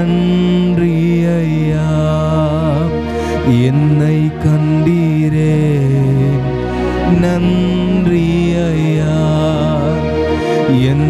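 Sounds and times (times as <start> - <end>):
deep bass: 0.0 - 11.0
keyboard sustained chords: 0.0 - 11.0
man singing long low note: 0.0 - 11.0.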